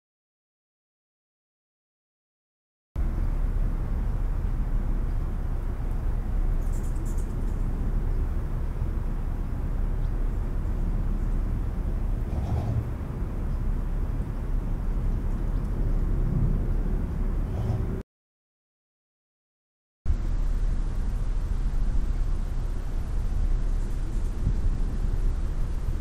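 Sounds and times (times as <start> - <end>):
distant traffic: 3.0 - 18.0, 20.1 - 26.0
wind rumble on microphones: 3.0 - 18.0, 20.1 - 26.0.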